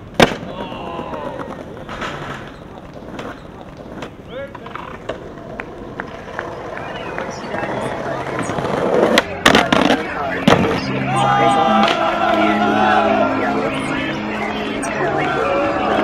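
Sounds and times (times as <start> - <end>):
skateboard clacking on ground: 0.0 - 10.8
skateboard wheels rolling on stone: 0.0 - 10.8.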